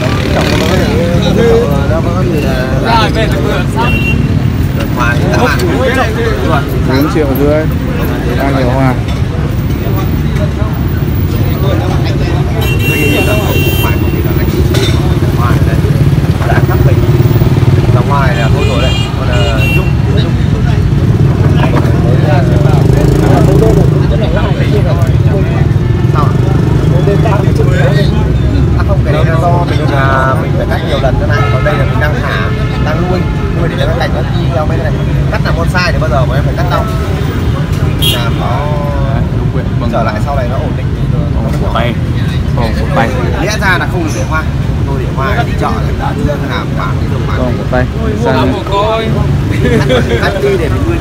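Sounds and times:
faint voices: 0.0s - 51.0s
man speaking: 38.0s - 51.0s.

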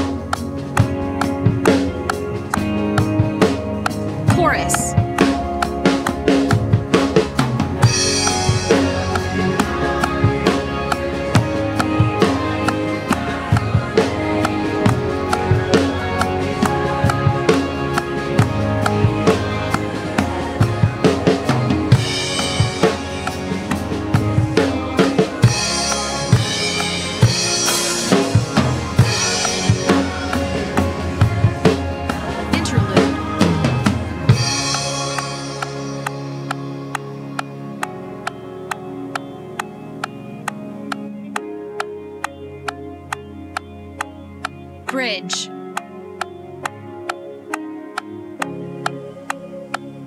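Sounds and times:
drum kit groove: 0.0s - 42.4s
backing track of held chords: 0.0s - 50.0s.

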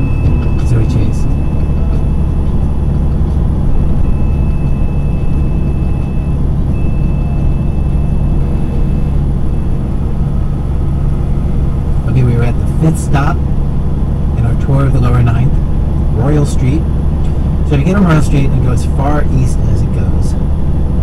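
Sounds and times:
truck engine and tyres drone: 0.0s - 21.0s.

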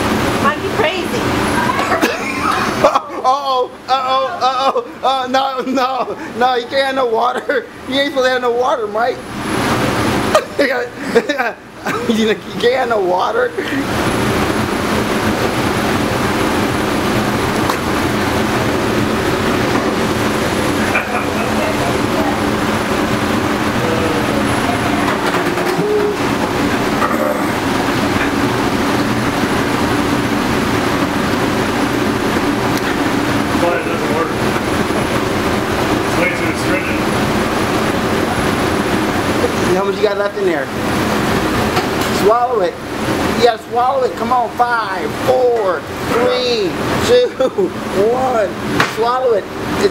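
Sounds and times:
exhaust hood fan droning: 0.0s - 49.9s.

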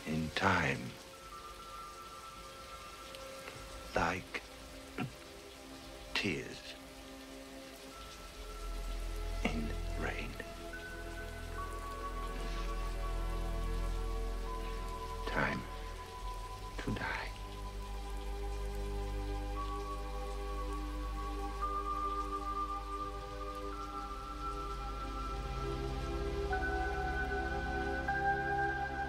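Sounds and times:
heavy rain: 0.0s - 29.0s
slow synthesizer score: 0.0s - 29.0s.

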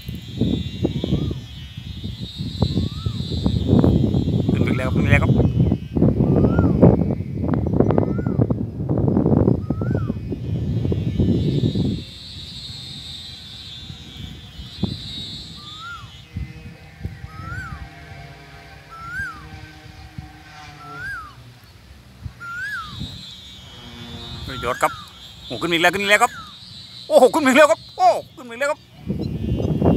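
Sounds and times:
bird whistling: 0.0s - 8.5s, 9.4s - 29.9s
wind buffeting microphone: 0.0s - 29.9s.

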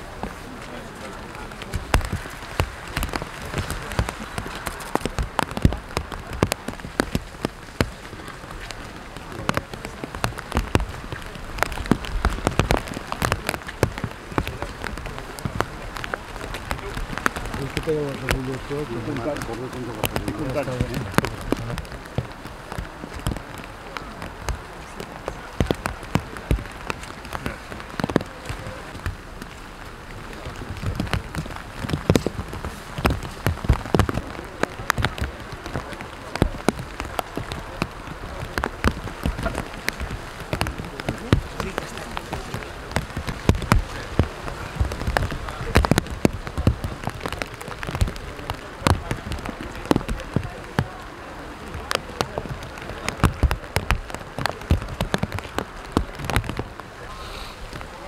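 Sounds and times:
heavy rain on umbrellas: 0.0s - 58.0s
sharp raindrop hits: 0.0s - 58.0s.

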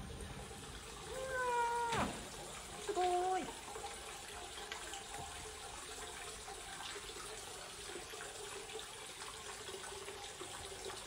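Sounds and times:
water pouring from a spout: 0.0s - 11.0s.

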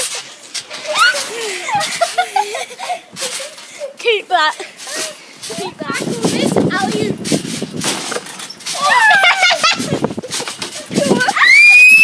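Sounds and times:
children's voices: 0.8s - 7.4s, 8.7s - 11.8s
child squealing laugh: 0.9s - 3.5s, 8.8s - 10.0s, 10.9s - 12.0s.

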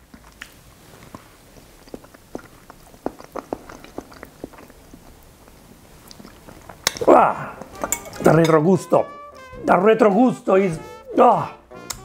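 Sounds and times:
wet mouth clicks: 0.0s - 8.3s
person chewing food: 0.0s - 8.4s.

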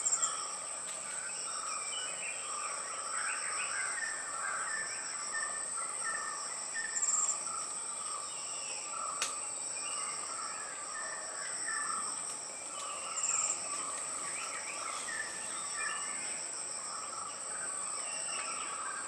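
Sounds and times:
high insect whine: 0.0s - 19.0s
pulsed insect trills: 0.0s - 19.0s.

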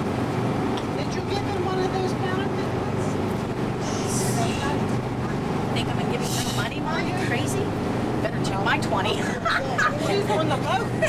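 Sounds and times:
boat engine drone: 0.0s - 11.0s
wind: 0.0s - 11.0s.

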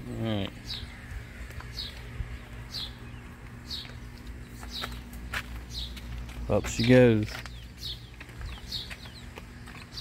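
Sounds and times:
steady low hum: 0.0s - 10.0s
bird chirping: 0.4s - 10.0s.

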